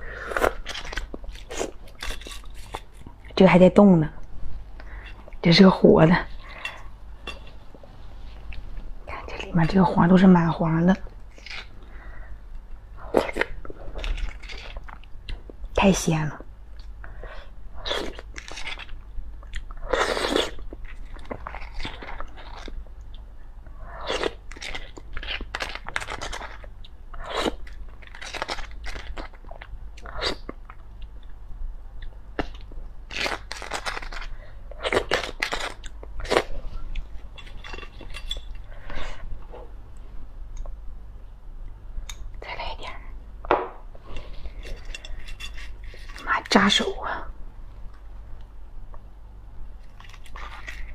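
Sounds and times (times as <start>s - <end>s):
steady low hum: 0.0s - 50.9s
wet chewing and mouth sounds: 49.7s - 50.9s.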